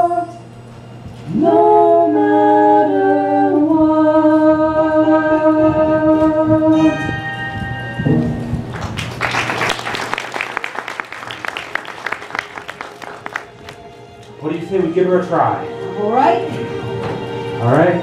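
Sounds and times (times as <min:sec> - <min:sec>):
audience applause: 0:08.7 - 0:13.9.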